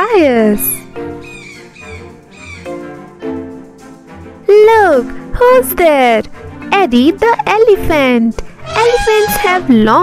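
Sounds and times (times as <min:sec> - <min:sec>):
children's background music: 0:00.0 - 0:10.0
high falling animal call: 0:01.2 - 0:02.7.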